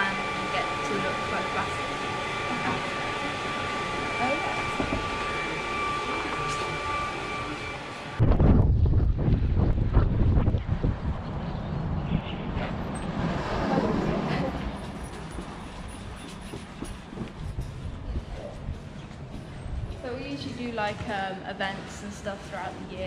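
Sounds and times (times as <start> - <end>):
workshop machinery whine: 0.0 - 8.4
footsteps: 14.4 - 22.0.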